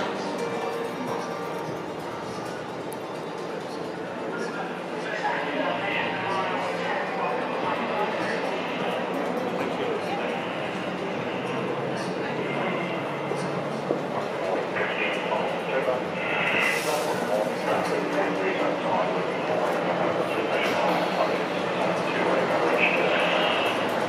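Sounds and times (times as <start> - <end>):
indistinct chatter in a hall: 0.0 - 24.0.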